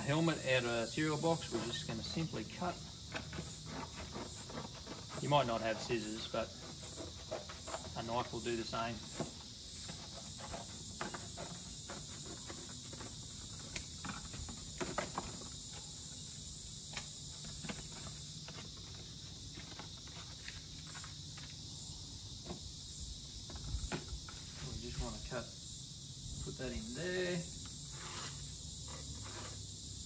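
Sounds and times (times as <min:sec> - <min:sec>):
insects trilling: 0:00.0 - 0:30.0
scissors cutting cardboard: 0:02.7 - 0:08.4.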